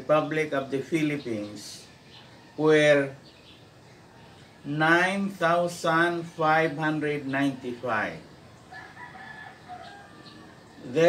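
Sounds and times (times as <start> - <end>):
rooster crowing faintly: 8.6 - 11.0.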